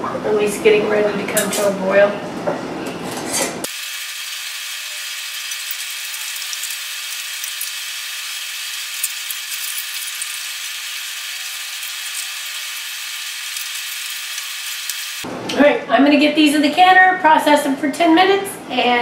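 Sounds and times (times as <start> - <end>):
water heating in pot hissing: 3.7 - 15.2.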